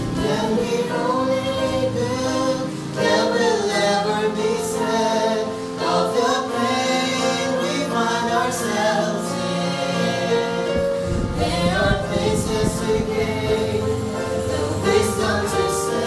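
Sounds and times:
woman and man singing gospel: 0:00.0 - 0:16.0.

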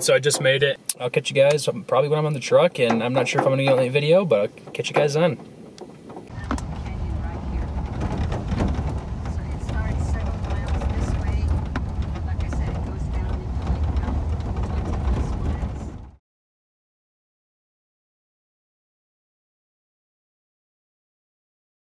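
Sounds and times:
truck engine and road rumble: 0:00.0 - 0:16.2
knocks and rattles: 0:02.6 - 0:16.2.

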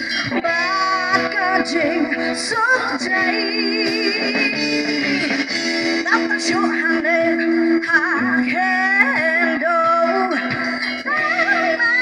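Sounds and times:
live band playing: 0:00.0 - 0:12.0
woman singing: 0:00.0 - 0:12.0.

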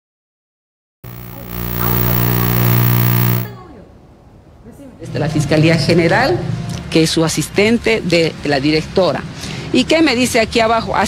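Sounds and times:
loud buzzing drone: 0:01.0 - 0:03.5.

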